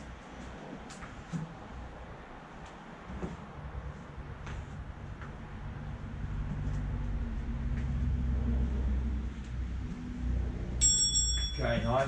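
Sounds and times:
low engine-like rumble: 0:00.0 - 0:10.9
high bell-like timer chime: 0:10.8 - 0:12.0.

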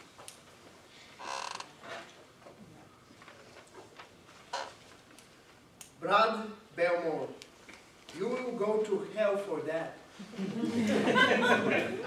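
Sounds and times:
squeaky creak: 0:01.2 - 0:02.1, 0:04.5 - 0:04.8.

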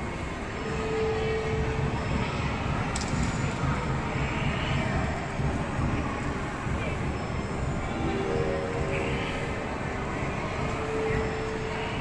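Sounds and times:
faint held tone: 0:07.9 - 0:10.1
crowd hum: 0:07.9 - 0:11.3.

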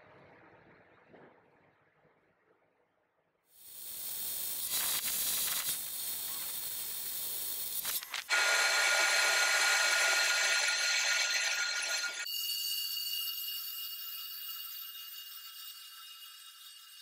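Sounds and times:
metal lathe cutting whine: 0:08.3 - 0:12.3.

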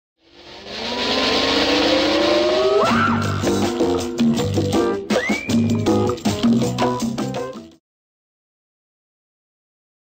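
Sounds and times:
tones gliding upward: 0:00.2 - 0:04.2
whoosh sound effect: 0:00.2 - 0:04.2
intro jingle: 0:00.2 - 0:04.6.

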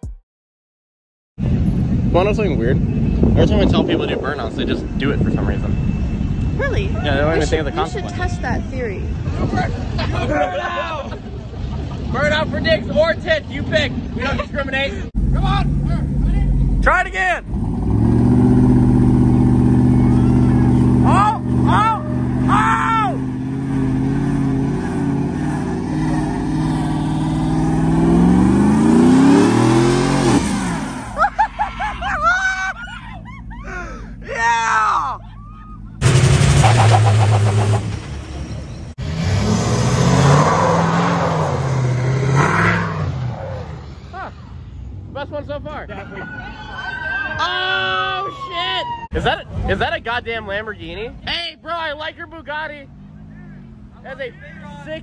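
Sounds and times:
truck engines running: 0:01.4 - 0:55.0
truck engine revving: 0:15.1 - 0:31.9, 0:36.0 - 0:45.2
people yelling: 0:19.7 - 0:23.4, 0:31.2 - 0:36.0, 0:45.9 - 0:49.2.

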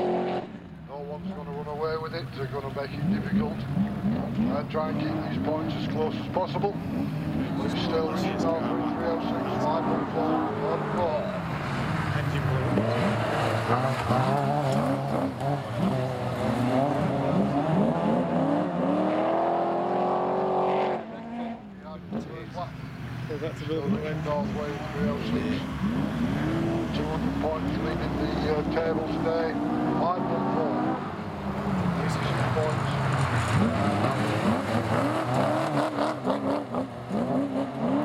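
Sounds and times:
race car engines running: 0:00.0 - 0:38.0
commentator talking: 0:07.4 - 0:11.5, 0:21.0 - 0:31.0.

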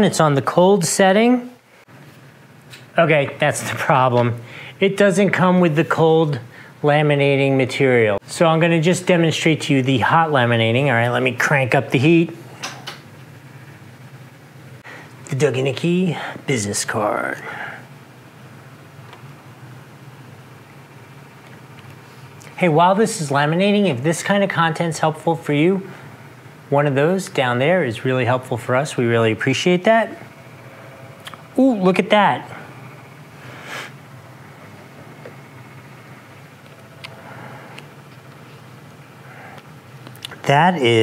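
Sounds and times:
laminator humming: 0:00.0 - 0:41.0.

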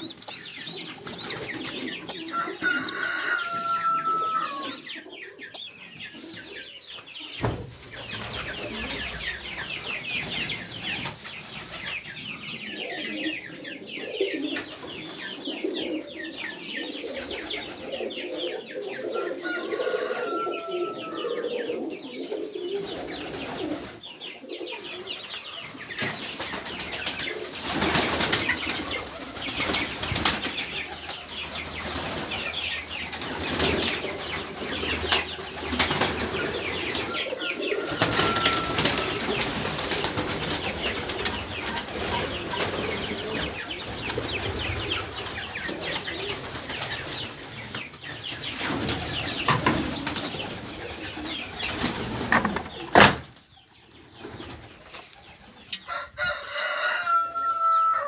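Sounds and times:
wings flapping: 0:00.0 - 0:03.0, 0:26.0 - 0:52.4
pigeons cooing: 0:00.0 - 0:53.3
chickens and chicks calling: 0:00.0 - 0:58.0.

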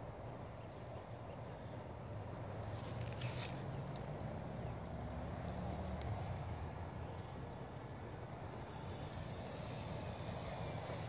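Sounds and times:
low steady rumble: 0:00.0 - 0:11.0
birds chattering: 0:00.2 - 0:02.3.

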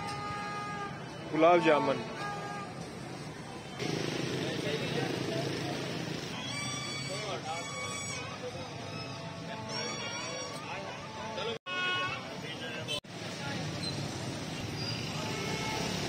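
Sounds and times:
crowd chatter: 0:00.0 - 0:13.9
traffic noise: 0:00.0 - 0:16.0.

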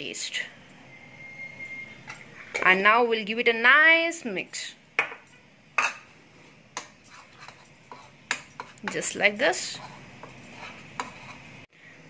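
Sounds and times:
spoon stirring flour in bowl: 0:06.8 - 0:11.6.

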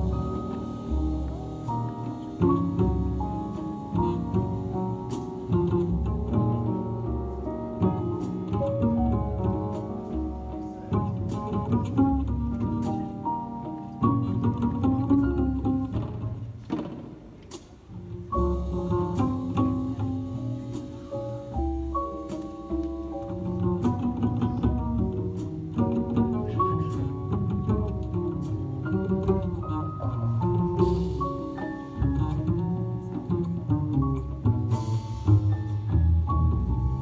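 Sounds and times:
jazz grand piano: 0:00.0 - 0:37.0
plucked double bass: 0:00.0 - 0:37.0.

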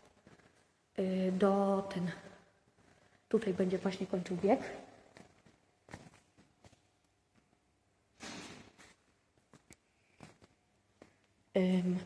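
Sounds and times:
faint footsteps on tiled floor: 0:00.0 - 0:11.6.

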